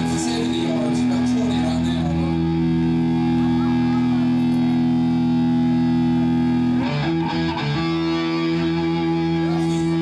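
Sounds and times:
rock band sustained chord: 0:00.0 - 0:10.0.

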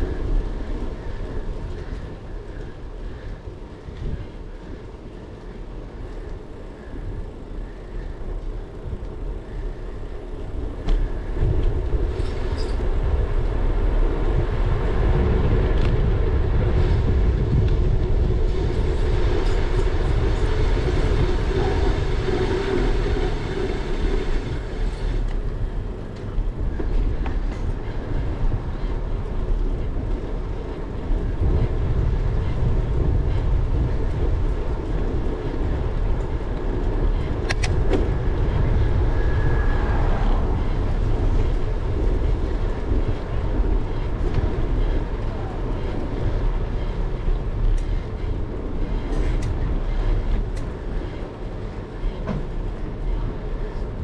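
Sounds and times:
bicycle tyres on pavement: 0:00.0 - 0:54.0
wind rumbling on microphone: 0:00.0 - 0:54.0.

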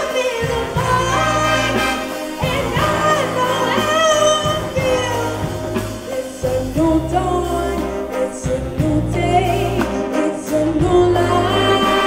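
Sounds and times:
jazz big band playing: 0:00.0 - 0:12.0.

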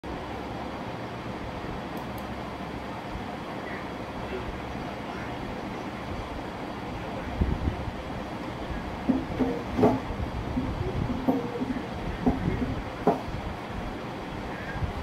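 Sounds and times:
steady rumbling noise: 0:00.0 - 0:15.0
muffled voices: 0:03.4 - 0:15.0.

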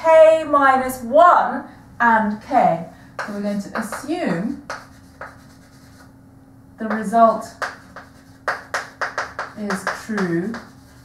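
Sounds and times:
woman speaking: 0:00.0 - 0:04.7, 0:06.8 - 0:07.6, 0:09.6 - 0:10.7
chalk writing on a blackboard: 0:03.2 - 0:06.1, 0:06.9 - 0:11.0.

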